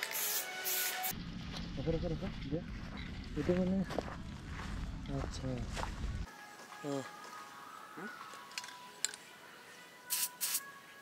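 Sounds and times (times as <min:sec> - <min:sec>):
spray can hissing: 0:00.0 - 0:01.1, 0:10.1 - 0:10.7
low wind rumble on microphone: 0:01.2 - 0:06.3.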